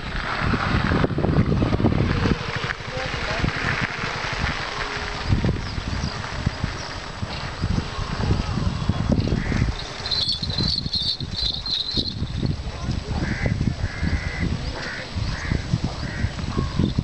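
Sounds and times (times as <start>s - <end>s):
wind buffeting microphone: 0.0s - 17.0s
birds chirping: 1.3s - 17.0s
crow cawing: 13.2s - 16.8s.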